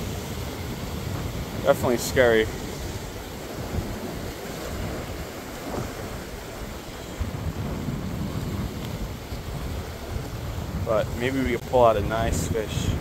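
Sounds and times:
sea surf washing among rocks: 0.0 - 13.0
wind buffeting microphone: 0.0 - 13.0.

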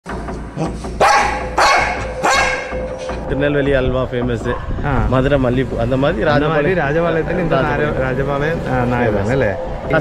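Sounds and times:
dog barking: 1.0 - 2.9.

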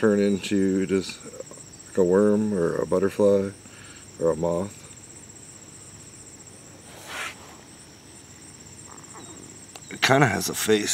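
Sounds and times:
insects chirring: 0.0 - 10.9.

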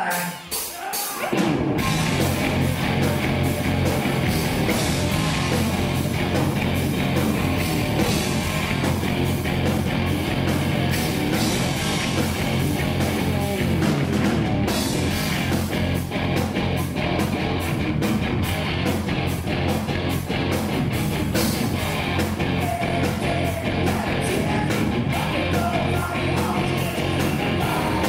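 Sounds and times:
electric guitars: 0.0 - 28.0
steady drum beat: 0.0 - 28.0
bass: 1.2 - 28.0.

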